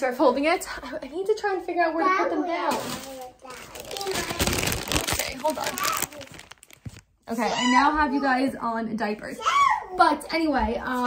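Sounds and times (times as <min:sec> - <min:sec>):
clothes rustling: 0:03.4 - 0:07.4.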